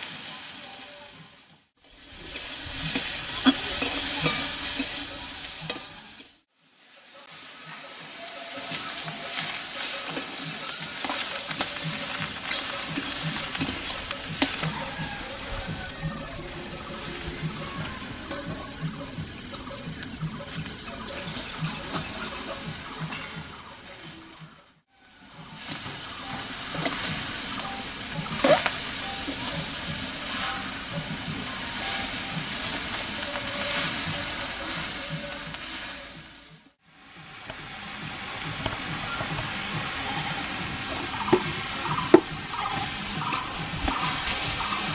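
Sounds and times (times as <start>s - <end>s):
vegetables sizzling in a pan: 0.0s - 44.9s
metal spatula scraping a pan: 1.9s - 6.4s, 8.3s - 23.6s, 25.6s - 35.1s.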